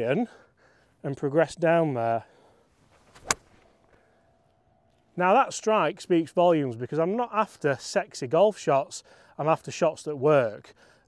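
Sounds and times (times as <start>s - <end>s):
golf club striking ball: 3.0s - 3.8s.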